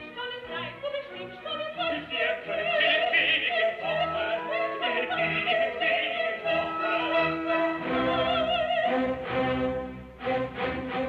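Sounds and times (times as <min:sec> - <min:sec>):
operatic singing with vibrato: 0:00.0 - 0:11.0.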